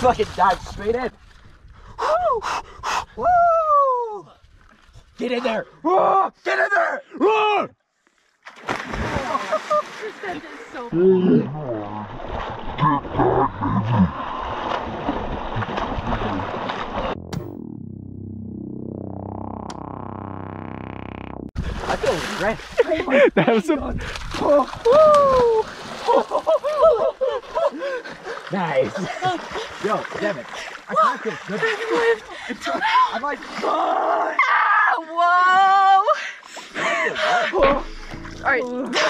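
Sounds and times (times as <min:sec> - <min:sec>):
body thudding into water: 0:08.4 - 0:10.5, 0:12.2 - 0:17.4, 0:24.0 - 0:27.1, 0:37.5 - 0:39.0
splash into water: 0:08.4 - 0:10.7, 0:11.8 - 0:17.2, 0:21.6 - 0:22.9, 0:24.0 - 0:27.0.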